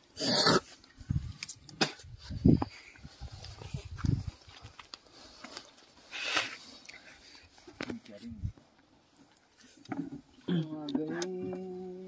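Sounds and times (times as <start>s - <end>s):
soft thumps and shuffling: 1.0s - 12.0s.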